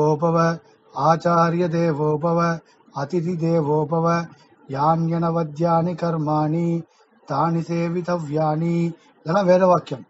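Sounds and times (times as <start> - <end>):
man chanting verse: 0.0 - 10.0.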